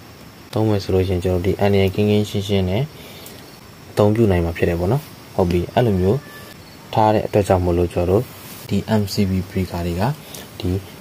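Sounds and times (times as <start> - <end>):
man speaking: 0.5 - 3.0, 3.9 - 11.0.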